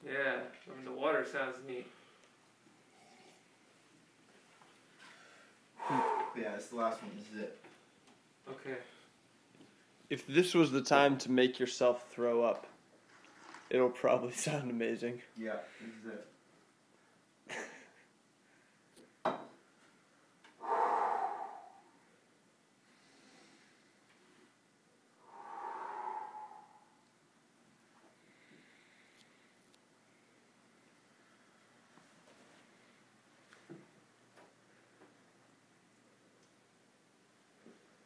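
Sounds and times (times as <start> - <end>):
heavy breaths close to microphone: 5.0 - 6.7, 20.6 - 22.0, 25.2 - 27.0.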